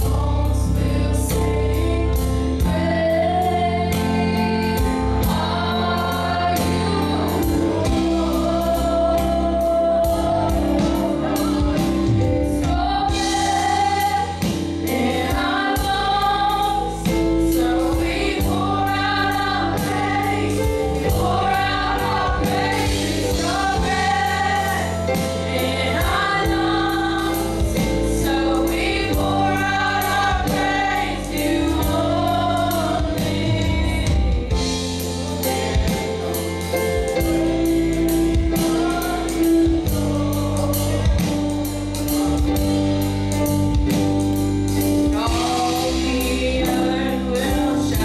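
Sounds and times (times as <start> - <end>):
women singing in harmony: 0.0 - 42.7, 45.0 - 48.0
keyboard: 0.0 - 48.0
drum kit beat: 1.4 - 48.0.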